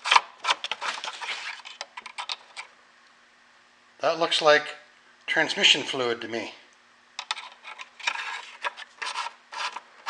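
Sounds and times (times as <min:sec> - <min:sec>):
dipstick clicking and scraping: 0:07.2 - 0:09.9.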